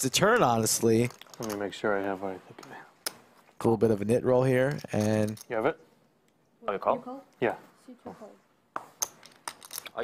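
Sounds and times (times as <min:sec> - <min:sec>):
poker chips clicking: 0:09.0 - 0:10.0.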